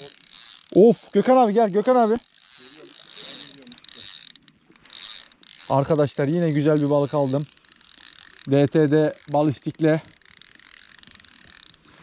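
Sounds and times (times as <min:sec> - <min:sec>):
fishing reel clicking: 0:00.0 - 0:12.0.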